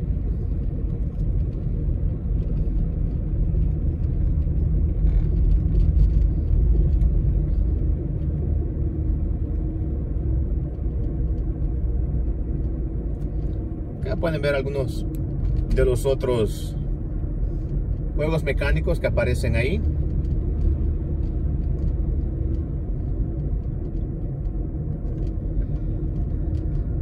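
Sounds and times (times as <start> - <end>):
car interior road rumble: 0.0 - 27.0.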